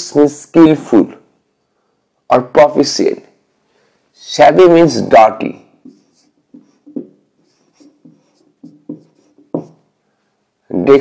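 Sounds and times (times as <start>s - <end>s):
marker writing on whiteboard: 5.7s - 10.0s.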